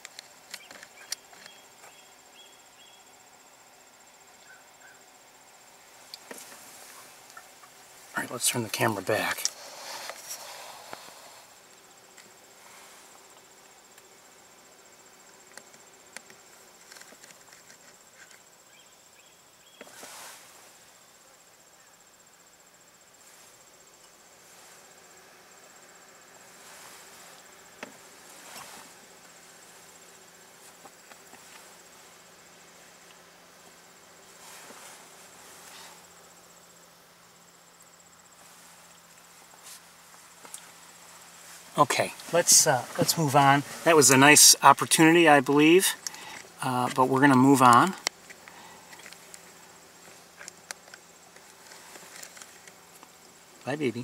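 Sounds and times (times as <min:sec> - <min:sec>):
insect chorus with high trill: 0:00.0 - 0:54.0.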